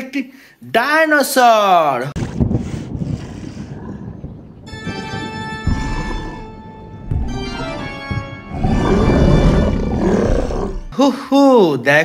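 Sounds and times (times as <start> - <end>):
music: 4.7 - 10.9
deep dinosaur roar: 5.6 - 6.6, 8.5 - 10.9.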